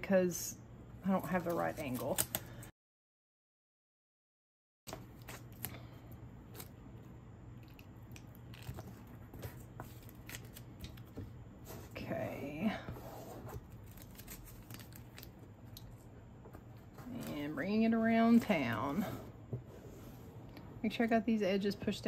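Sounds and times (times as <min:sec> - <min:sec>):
tape crinkling and rubbing: 0:07.6 - 0:11.2, 0:13.5 - 0:16.1.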